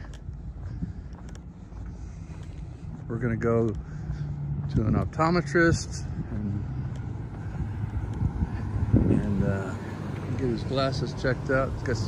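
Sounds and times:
motor vehicle rumbling: 0.0s - 12.0s.

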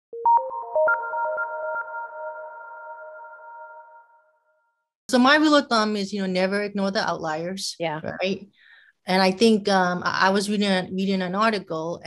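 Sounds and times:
electronic chiming jingle: 0.2s - 4.6s.

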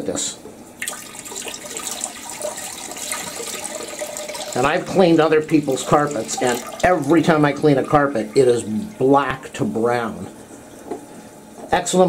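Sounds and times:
water pouring into toilet bowl: 0.8s - 8.6s.

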